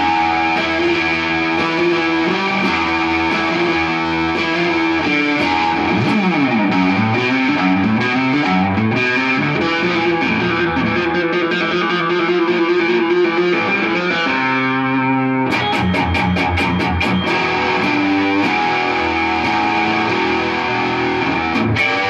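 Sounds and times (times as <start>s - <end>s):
overdriven electric guitar: 0.0s - 22.0s.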